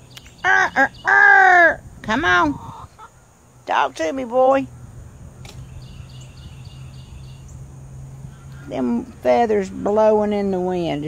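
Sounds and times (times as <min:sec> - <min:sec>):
single click: 0:05.4 - 0:05.7.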